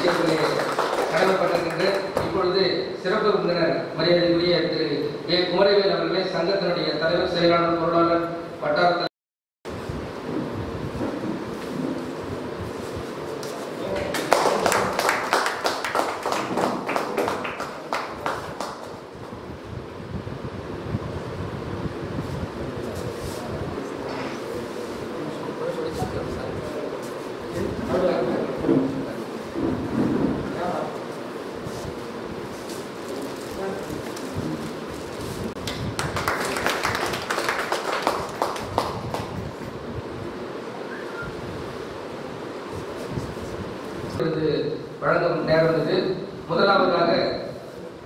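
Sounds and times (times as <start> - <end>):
people clapping: 0.0 - 2.4, 13.4 - 19.1, 35.6 - 39.5
low room noise: 0.0 - 9.1, 9.7 - 48.0.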